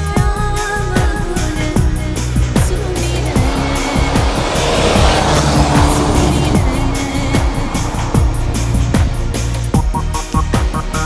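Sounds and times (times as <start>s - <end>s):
rally car engine: 0.0s - 11.0s
tyres sliding on snow: 0.8s - 11.0s
electronic music with steady beat: 8.2s - 11.0s.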